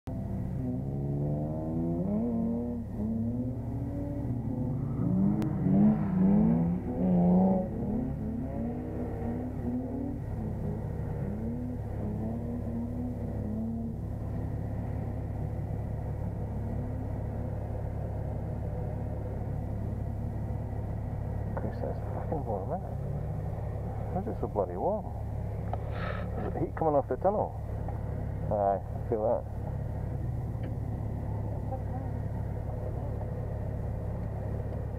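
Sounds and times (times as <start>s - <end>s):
car engine revving: 0.1s - 34.9s.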